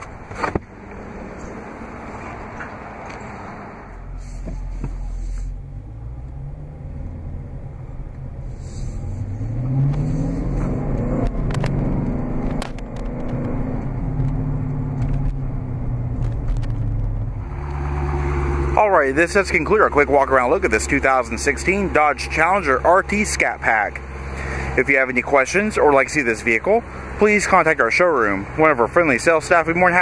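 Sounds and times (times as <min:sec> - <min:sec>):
car engine running: 0:00.0 - 0:30.0.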